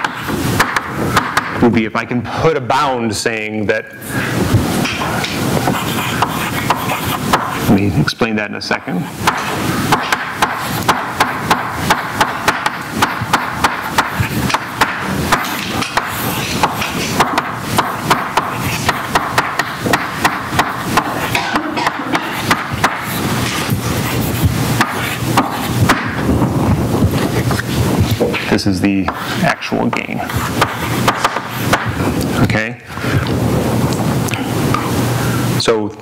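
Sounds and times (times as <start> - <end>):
chalk tapping and scraping on blackboard: 0.0 - 1.6, 4.8 - 7.8, 9.2 - 32.1.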